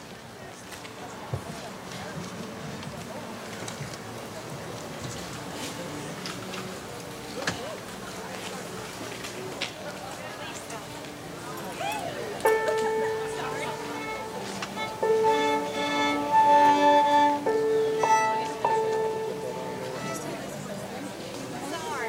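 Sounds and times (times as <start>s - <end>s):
violin strings bowed: 12.4s - 21.0s.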